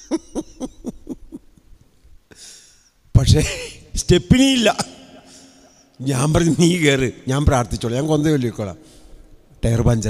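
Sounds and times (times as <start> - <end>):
man laughing into microphone: 0.0 - 1.6.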